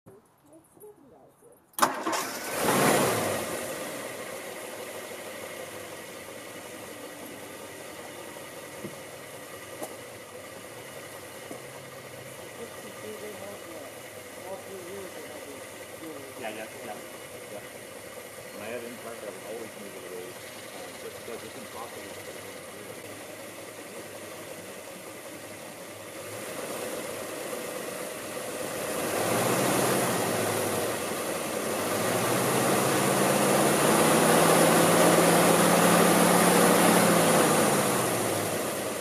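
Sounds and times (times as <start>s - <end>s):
car engine starting and idling: 0.2s - 39.0s.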